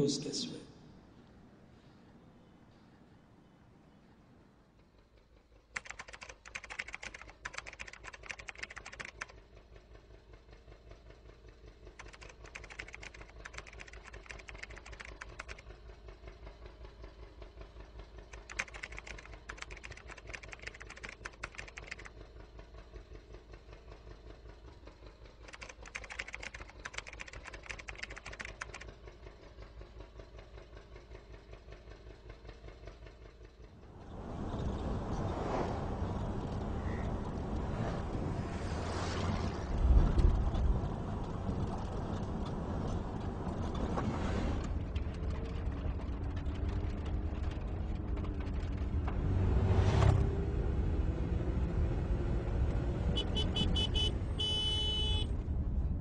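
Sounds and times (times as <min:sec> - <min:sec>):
rapid typing clicks: 0:05.7 - 0:09.5, 0:12.0 - 0:15.7, 0:18.3 - 0:22.2, 0:25.4 - 0:29.0
steady low rumble: 0:33.9 - 0:43.7.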